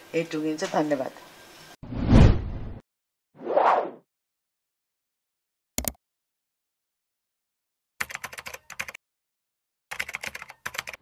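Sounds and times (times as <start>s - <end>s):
keyboard typing clicks: 8.0s - 9.0s, 9.9s - 11.0s.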